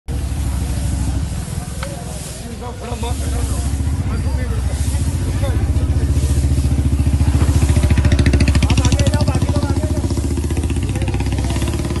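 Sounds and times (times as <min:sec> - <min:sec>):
engine running with rapid pulsing: 0:03.3 - 0:12.0.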